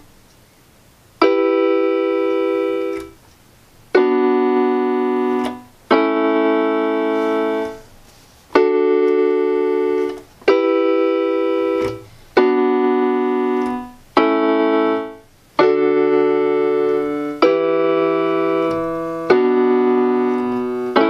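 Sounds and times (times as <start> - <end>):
electronic keyboard chords: 1.2 - 3.2, 3.8 - 21.0.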